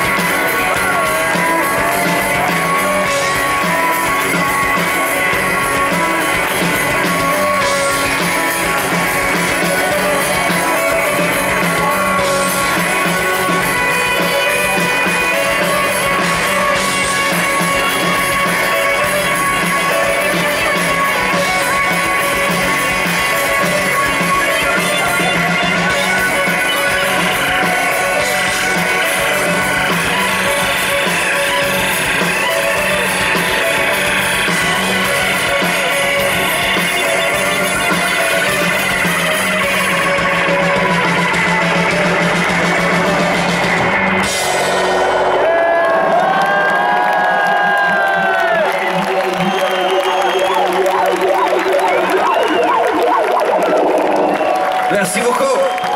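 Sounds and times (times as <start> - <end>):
crowd cheering and whooping: 0.0 - 55.9
live rock band playing loudly: 0.0 - 55.9.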